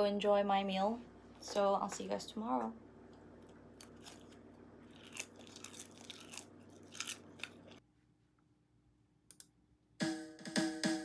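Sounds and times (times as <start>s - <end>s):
low room hum: 0.0s - 10.0s
chewing and crunching food: 3.3s - 7.8s.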